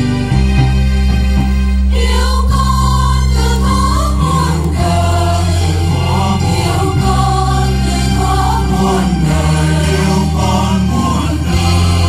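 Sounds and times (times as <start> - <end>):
instrumental accompaniment: 0.0 - 12.0
choir singing a hymn: 1.9 - 12.0.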